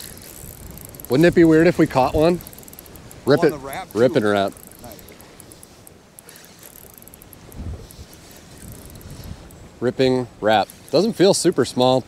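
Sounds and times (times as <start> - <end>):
fishing reel clicking: 0.0 - 9.6, 10.5 - 11.9
low rumble of wind and water: 0.0 - 12.0.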